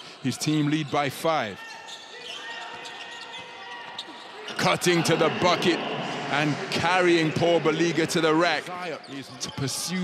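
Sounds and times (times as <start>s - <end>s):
voices in arena: 0.0s - 10.0s.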